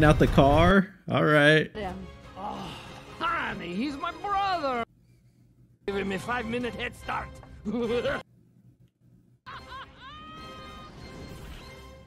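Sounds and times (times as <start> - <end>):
film music: 1.7 - 4.9, 5.8 - 8.2, 9.5 - 12.0.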